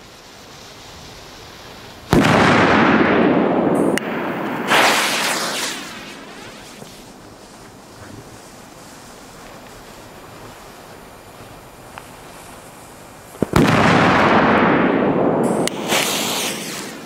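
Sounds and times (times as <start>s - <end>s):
firework burst: 0.0s - 17.0s
firework cracks: 0.0s - 17.0s.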